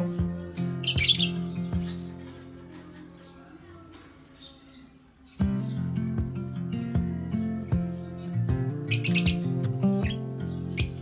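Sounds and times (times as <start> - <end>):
plucked acoustic guitar music: 0.0 - 11.0
bird shrill squawk: 8.9 - 10.2.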